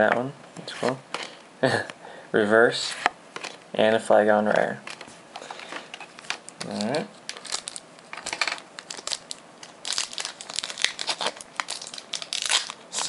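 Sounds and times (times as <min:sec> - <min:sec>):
foil wrapper crinkling: 0:04.9 - 0:13.0.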